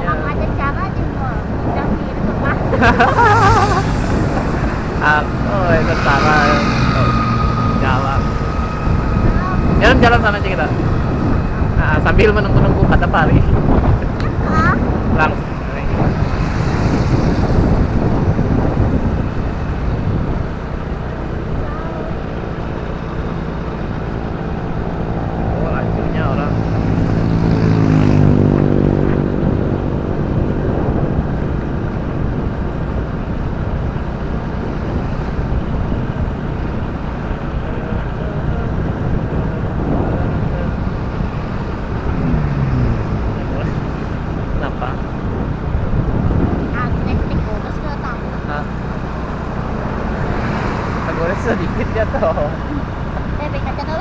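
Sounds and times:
engine rising in pitch: 0:00.0 - 0:54.0
wind rush on microphone: 0:00.0 - 0:54.0.

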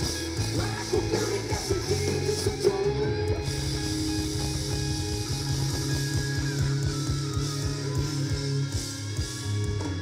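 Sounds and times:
bass guitar: 0:00.0 - 0:10.0
electric guitars: 0:00.0 - 0:10.0
steady drum beat: 0:00.0 - 0:10.0.

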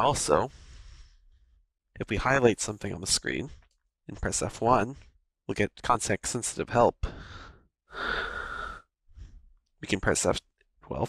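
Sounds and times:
person exhaling: 0:07.2 - 0:08.8.

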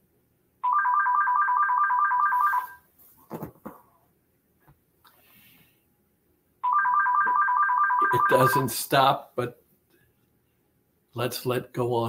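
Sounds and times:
telephone ringing: 0:00.6 - 0:02.8, 0:06.6 - 0:08.7.

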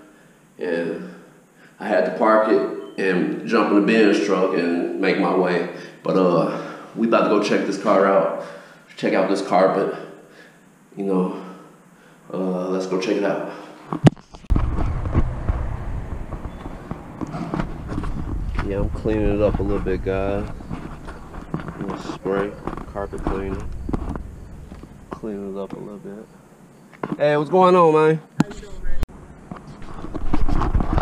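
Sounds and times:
wind on microphone: 0:14.5 - 0:25.5
footsteps on pavement: 0:15.0 - 0:18.7.

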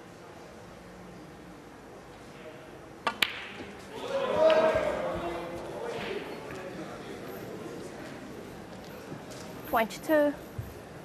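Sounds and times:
crowd voices: 0:03.6 - 0:11.0.

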